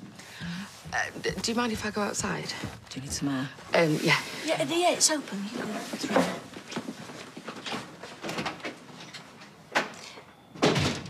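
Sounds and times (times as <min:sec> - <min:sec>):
footsteps: 0:00.0 - 0:08.2
door closing thud: 0:10.6 - 0:11.0.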